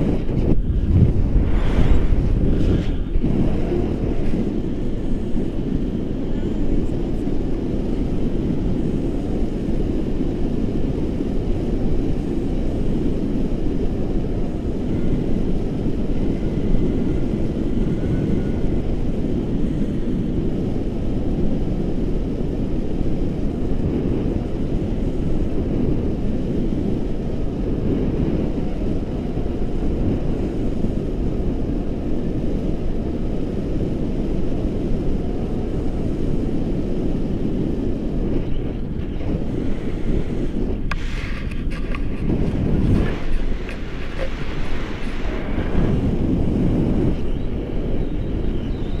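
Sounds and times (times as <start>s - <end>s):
wind rumbling over microphone: 0.0s - 49.0s.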